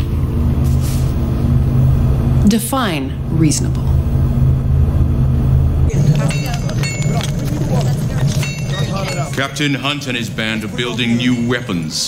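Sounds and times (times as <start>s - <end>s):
spaceship engine hum: 0.0s - 12.0s.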